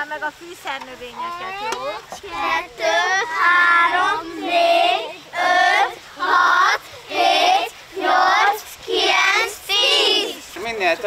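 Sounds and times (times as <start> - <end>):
children counting aloud in unison: 1.1 - 10.4.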